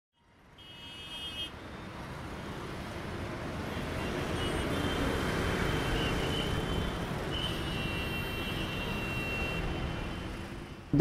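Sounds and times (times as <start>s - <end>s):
vehicle horn: 6.0s - 9.7s.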